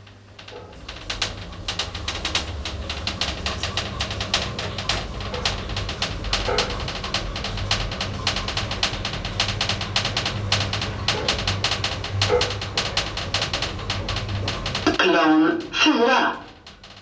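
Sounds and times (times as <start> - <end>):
elevator drive hum: 0.0 - 17.0
rapid clicking and ticking: 0.0 - 17.0.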